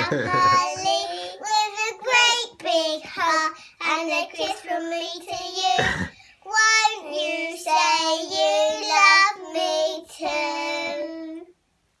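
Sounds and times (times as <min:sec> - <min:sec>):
young girls singing: 0:00.0 - 0:11.5.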